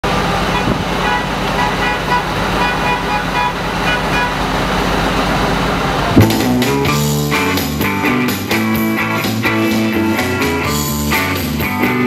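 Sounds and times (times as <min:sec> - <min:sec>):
engine rough rumble: 0:00.0 - 0:12.0.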